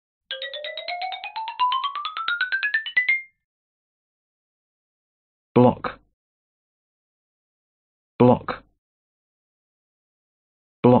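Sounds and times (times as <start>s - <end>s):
intro jingle of rising notes: 0.3s - 3.3s.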